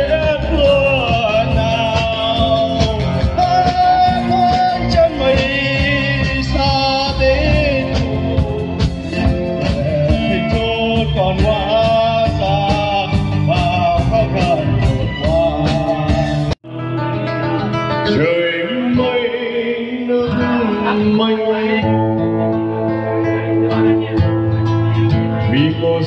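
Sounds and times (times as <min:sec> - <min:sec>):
man singing with acoustic guitar: 0:00.0 - 0:26.0
man singing with live band: 0:00.0 - 0:26.0.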